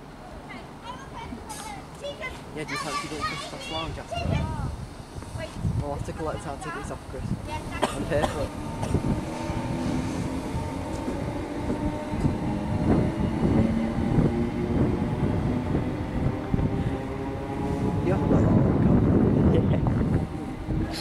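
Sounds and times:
wheels rumbling on rail: 0:00.0 - 0:21.0
electric train motor whine: 0:08.5 - 0:20.8.

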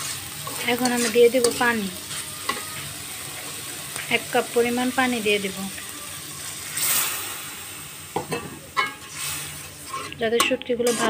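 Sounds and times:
water hissing in hot wok: 0:00.0 - 0:11.0
metal spatula knocking wok: 0:08.2 - 0:09.1.

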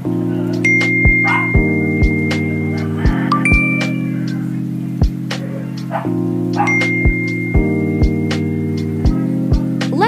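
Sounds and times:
lo-fi music with steady beat: 0:00.0 - 0:10.0
notification ding tone: 0:00.7 - 0:04.2, 0:06.7 - 0:07.9.

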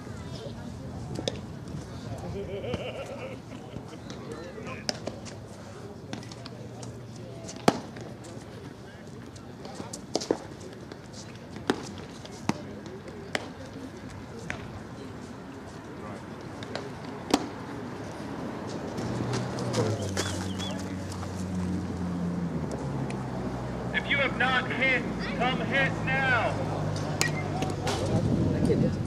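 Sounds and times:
faint background voices: 0:00.0 - 0:22.4, 0:23.1 - 0:29.0
baseballs hitting gloves and bats: 0:04.1 - 0:05.2, 0:07.5 - 0:08.2, 0:11.6 - 0:13.6, 0:16.5 - 0:17.6, 0:27.0 - 0:28.2.

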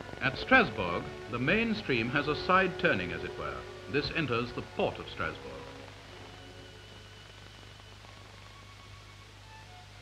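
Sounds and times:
old film soundtrack hum and hiss: 0:00.0 - 0:10.0
soft background music: 0:00.0 - 0:10.0.

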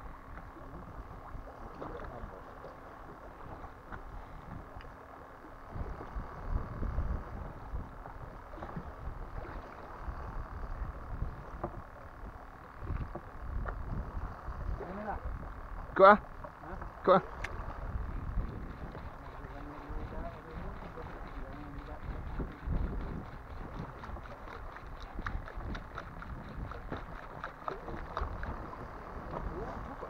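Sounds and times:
water sloshing against boat: 0:00.0 - 0:30.0
low rumbling gusts: 0:05.6 - 0:27.2.

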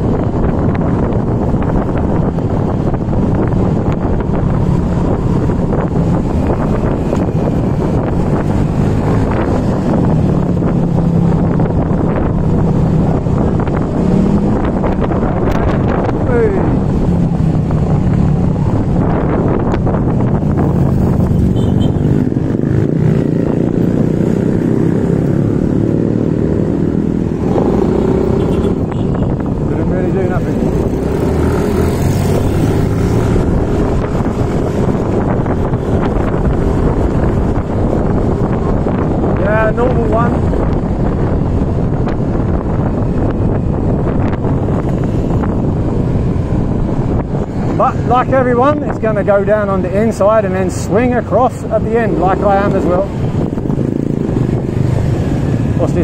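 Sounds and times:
passing motorcycles and cars: 0:00.0 - 0:56.0
wind noise on microphone: 0:00.0 - 0:56.0.

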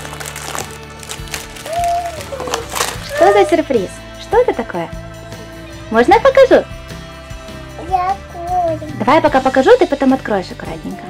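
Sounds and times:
plastic snack packets rustling: 0:00.0 - 0:03.7
background music: 0:00.0 - 0:11.0.

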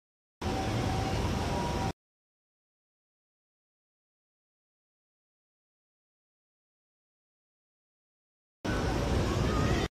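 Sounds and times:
faint steady tones: 0:00.4 - 0:02.0
low city rumble: 0:00.4 - 0:02.0, 0:08.6 - 0:09.9.

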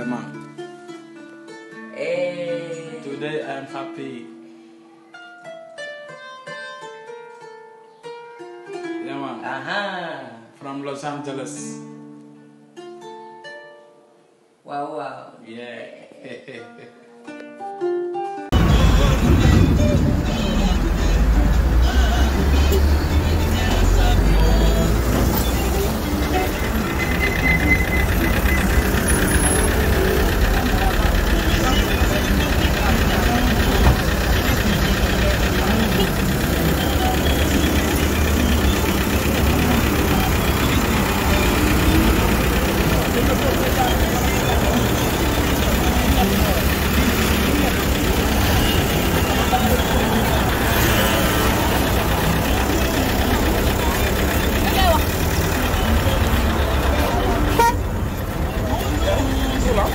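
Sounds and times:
car and bus engines running: 0:18.5 - 0:59.9
voices: 0:18.6 - 0:59.9.

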